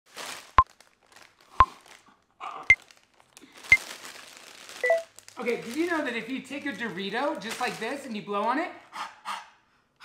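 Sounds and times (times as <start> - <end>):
chip bag crinkling: 0.1 - 8.6.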